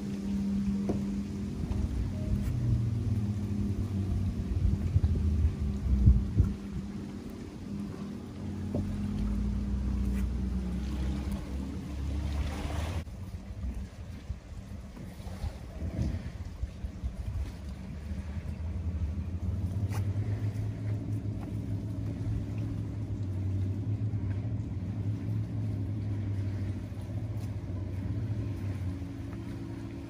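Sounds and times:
motorboat engine running: 0.0 - 30.0.

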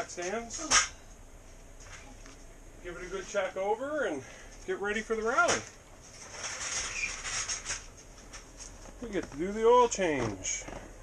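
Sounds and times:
rustling and shuffling: 0.0 - 11.0
faint squeak: 6.5 - 7.5.

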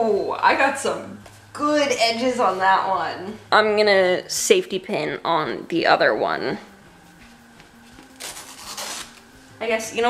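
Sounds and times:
cloth rustling: 6.8 - 9.4.

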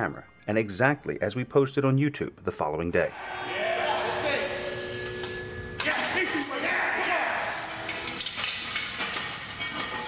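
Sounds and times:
faint metallic chain clinks: 6.2 - 10.0.

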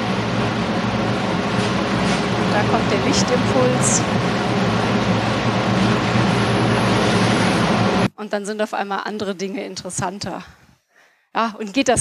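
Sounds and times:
low hum: 0.0 - 8.2.

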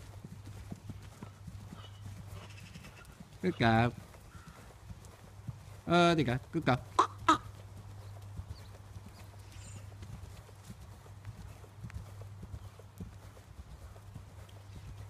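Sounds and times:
hooves cantering on sand: 0.0 - 15.0.

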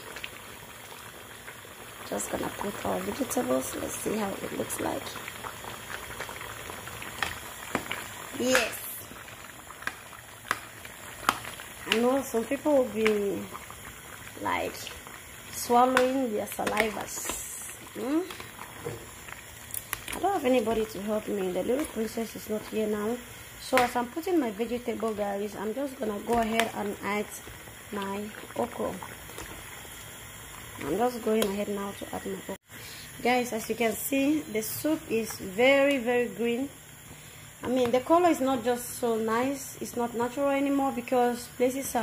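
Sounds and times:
soup bubbling in a pot: 0.0 - 42.0
sharp pops: 7.1 - 9.0, 9.7 - 12.3, 14.8 - 21.1, 23.6 - 24.0.

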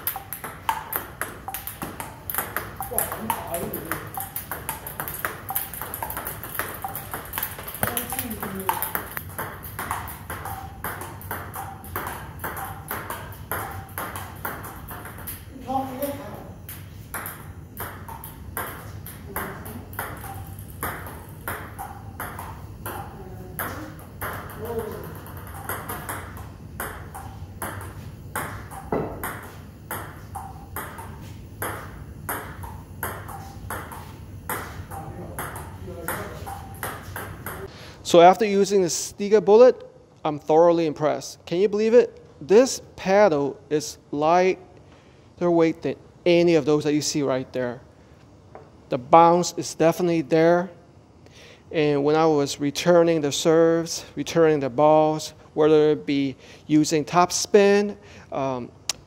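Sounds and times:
ball bouncing on table: 0.0 - 37.7
table tennis ball hitting paddles: 0.0 - 37.7.

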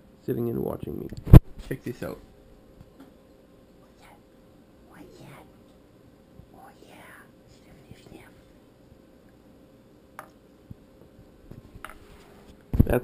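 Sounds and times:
person whispering: 3.9 - 4.2, 4.8 - 5.6, 6.5 - 8.5.

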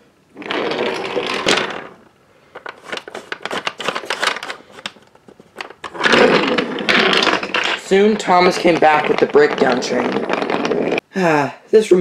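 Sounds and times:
toy train wheels rolling on track: 5.8 - 11.0.

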